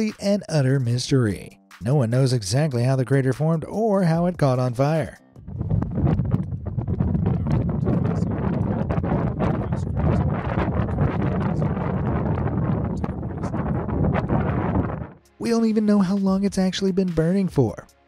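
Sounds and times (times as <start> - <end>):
wind on microphone: 5.4 - 15.2.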